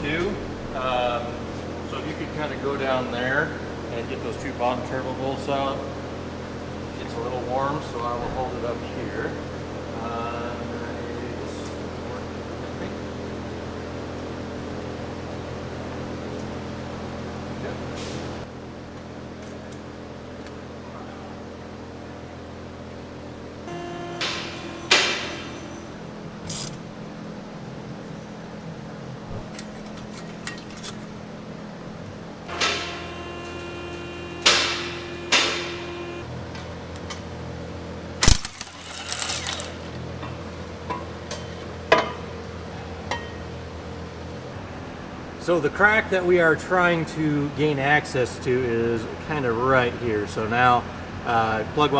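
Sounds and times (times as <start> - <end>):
steady hum: 20.8 - 36.6
metal tools clanking on engine: 24.5 - 26.9, 29.5 - 31.1, 38.2 - 42.2.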